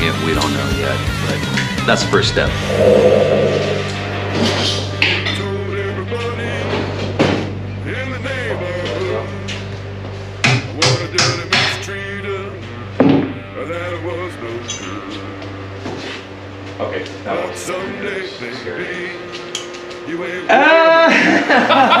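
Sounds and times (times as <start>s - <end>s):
background music: 0.0s - 22.0s.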